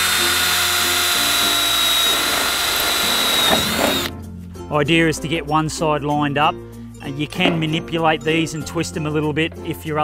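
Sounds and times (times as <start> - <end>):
power drill whining through steel: 0.0 - 4.1.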